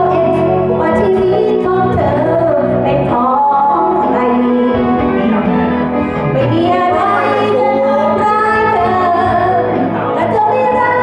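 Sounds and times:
girl singing karaoke: 0.0 - 5.2, 6.4 - 11.0
backing track: 0.0 - 11.0.

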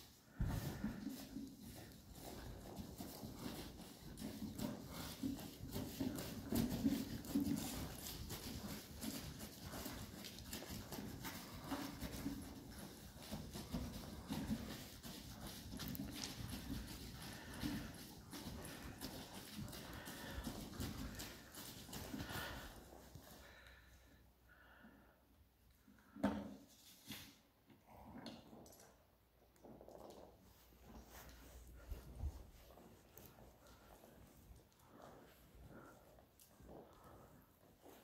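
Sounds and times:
hoofbeats on sand: 0.3 - 23.4.

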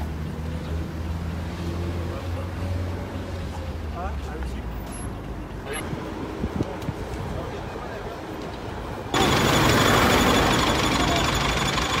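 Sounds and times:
faint street noise: 0.0 - 12.0
diesel engine idling: 9.2 - 12.0.

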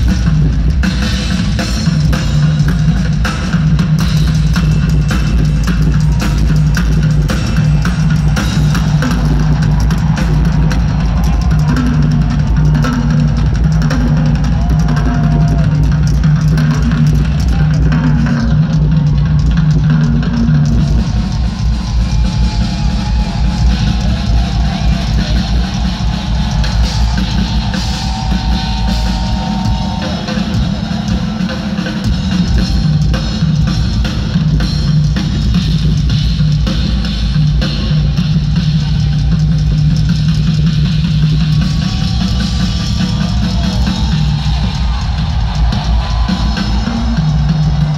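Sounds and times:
rock drum kit: 0.0 - 47.9.

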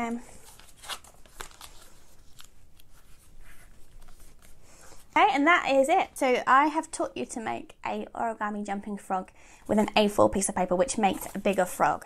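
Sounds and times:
paper crease crackles: 0.3 - 5.2
paper rustling: 0.3 - 5.2, 11.0 - 11.9.

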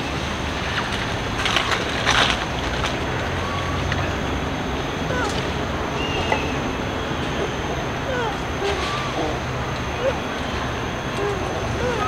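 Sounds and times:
twigs and dry leaves crackling: 0.6 - 6.5.

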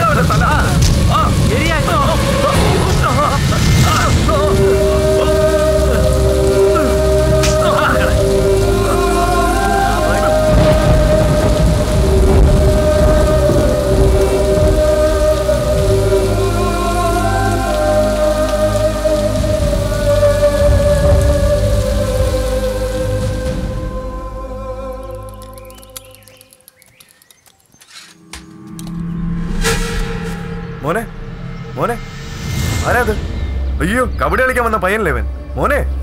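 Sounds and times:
heavy rain: 0.0 - 27.1
slow film score: 0.0 - 36.0.

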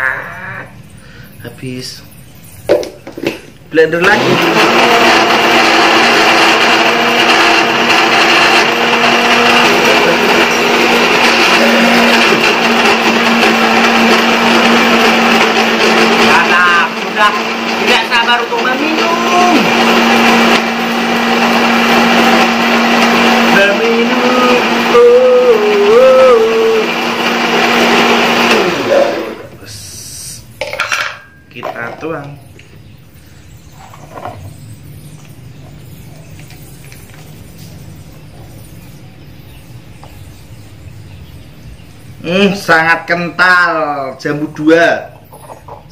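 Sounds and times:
blender running: 4.0 - 29.6.

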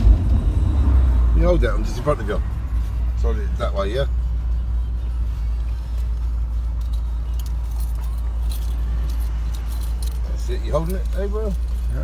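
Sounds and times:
car engine and road noise: 0.0 - 12.0
faint light clicks or jingles: 5.6 - 12.0.

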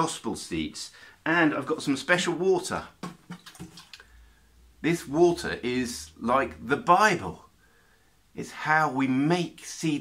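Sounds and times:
plastic watering can handling: 3.0 - 4.0.

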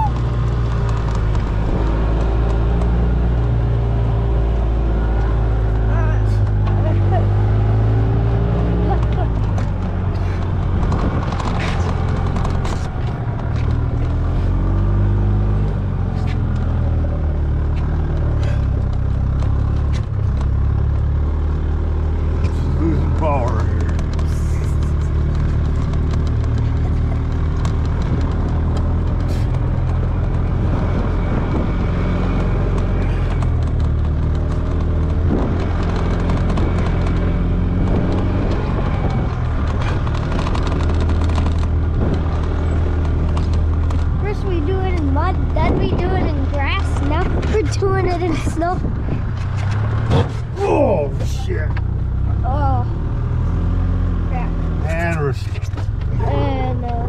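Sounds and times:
golf cart engine droning: 0.0 - 57.0.

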